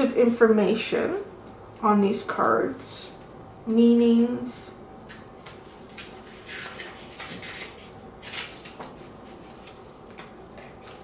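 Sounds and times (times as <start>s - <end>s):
book pages rustling: 5.4s - 11.0s.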